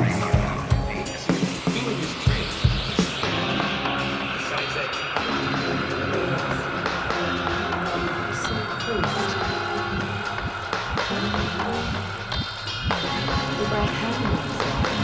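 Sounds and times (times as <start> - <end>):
bass line: 0.0 - 15.0
synth notes: 0.0 - 15.0.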